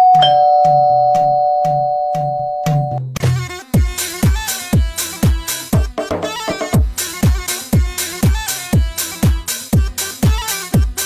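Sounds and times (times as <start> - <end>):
two-tone doorbell chime: 0.0 - 3.0
music with steady beat: 0.1 - 11.0.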